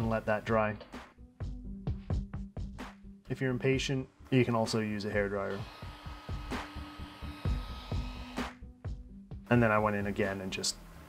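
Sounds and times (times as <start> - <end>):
background music with steady beat: 0.0 - 11.0
hair dryer blowing: 5.4 - 8.6.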